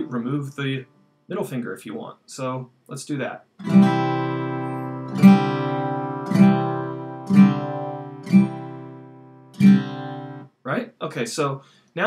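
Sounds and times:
acoustic guitar chords strummed: 3.6 - 10.5.

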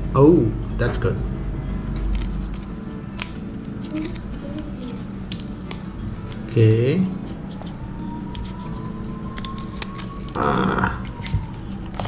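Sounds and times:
paper wrapper rustling: 2.0 - 12.0.

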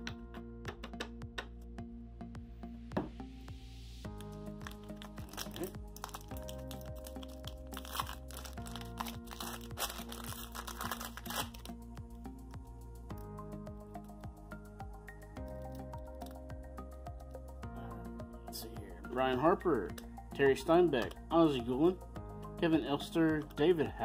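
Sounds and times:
soft background music chords: 0.0 - 24.0
paper cards clicking and rustling: 4.2 - 11.7.

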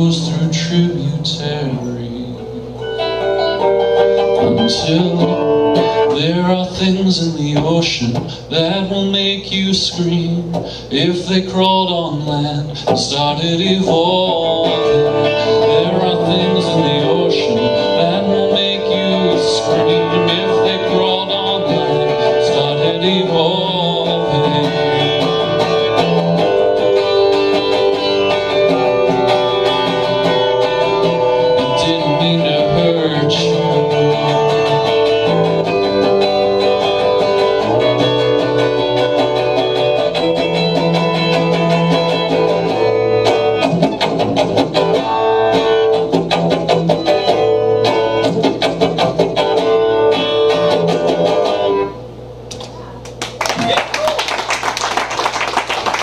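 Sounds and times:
electric guitar chords ringing: 0.0 - 52.4
audience clapping: 52.6 - 56.0.

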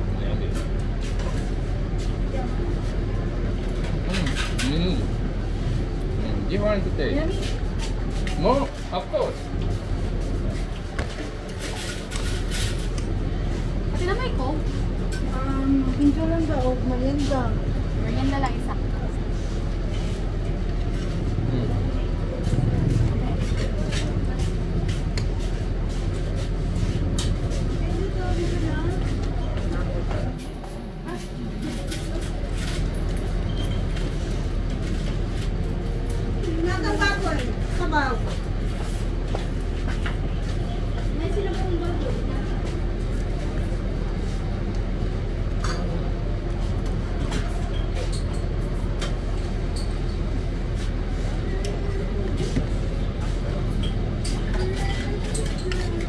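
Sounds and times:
low rumble of vehicle engines: 0.0 - 56.0.

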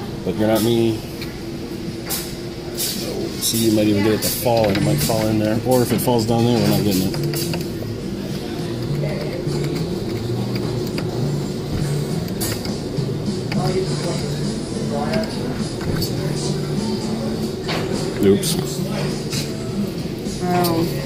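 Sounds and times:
indistinct voices: 2.6 - 21.0.

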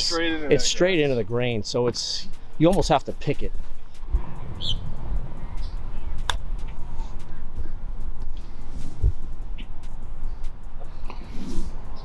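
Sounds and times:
wind buffeting microphone: 2.2 - 10.9
bird chirps: 3.8 - 7.9, 9.5 - 9.8
golf club striking ball: 4.8 - 7.4.

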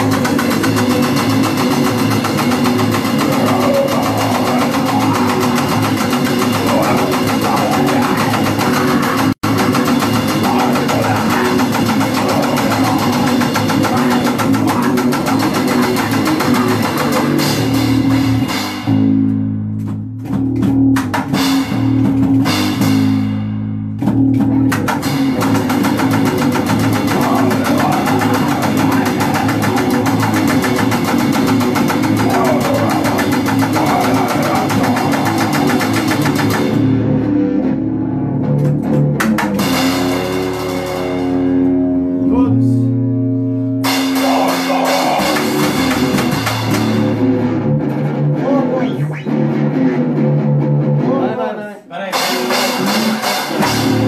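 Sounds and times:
fast drums: 0.0 - 19.2, 19.8 - 37.2, 38.5 - 41.8, 43.8 - 48.8, 52.1 - 54.0
distorted bass: 0.0 - 51.4, 52.1 - 54.0
electric guitar: 0.0 - 54.0.

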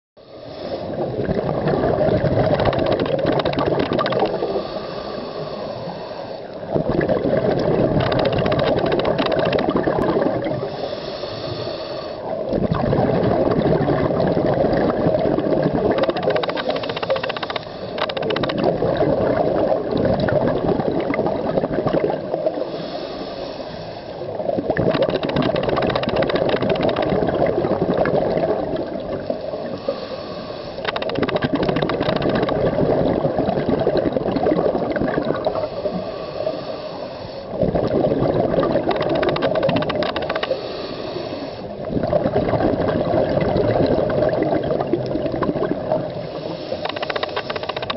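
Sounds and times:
diver inhaling through regulator: 0.2 - 1.0, 2.8 - 6.5, 10.6 - 12.3, 16.1 - 18.4, 22.6 - 24.3, 29.6 - 31.2, 35.5 - 37.6, 40.4 - 41.8, 46.2 - 47.9
bubbling regulator exhalations: 0.9 - 4.7, 6.7 - 10.9, 12.4 - 22.5, 24.4 - 29.9, 30.8 - 36.0, 37.5 - 40.6, 41.7 - 47.9.

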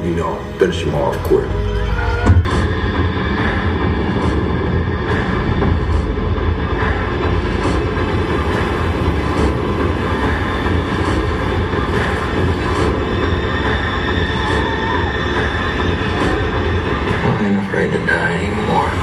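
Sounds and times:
film trailer soundtrack rumble: 0.0 - 19.0.

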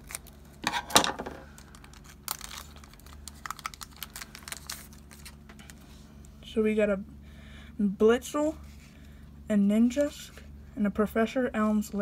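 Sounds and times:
cards clicking and rustling: 0.0 - 5.8
foil wrapper tearing and crinkling: 0.0 - 5.8.

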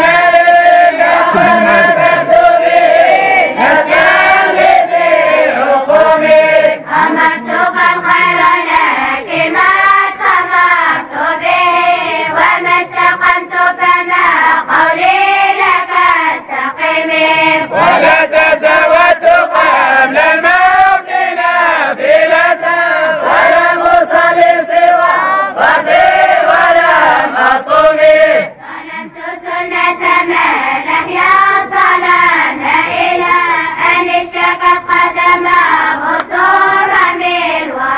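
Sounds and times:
boys chanting in unison: 0.0 - 37.9.

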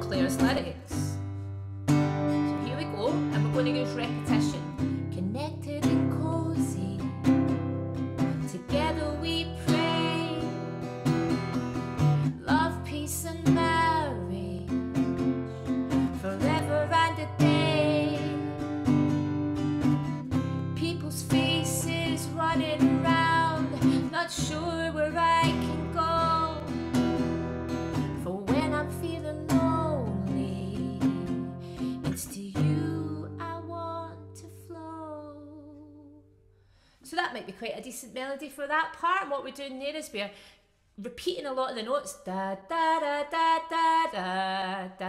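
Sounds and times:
woman singing: 0.0 - 1.2, 2.3 - 7.6, 8.2 - 10.9, 12.1 - 18.8, 20.6 - 27.0, 28.0 - 36.3, 37.1 - 40.3, 41.0 - 45.0
acoustic guitar strumming: 0.0 - 33.4.

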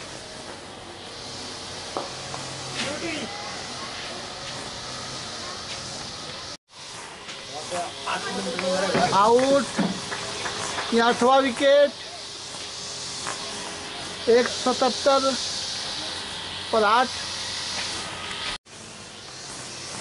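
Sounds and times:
steady hiss: 0.0 - 20.0
people calling and shouting: 0.6 - 6.6, 7.2 - 18.6.

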